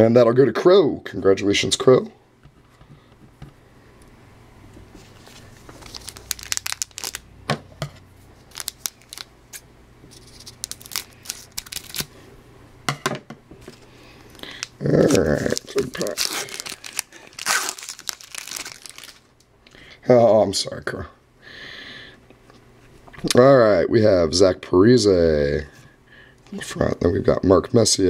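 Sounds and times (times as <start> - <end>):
cards clicking and rustling: 5.2 - 7.2, 8.5 - 12.1, 14.4 - 19.2
foil wrapper crinkling and tearing: 5.2 - 7.3, 8.4 - 12.2, 13.7 - 19.3.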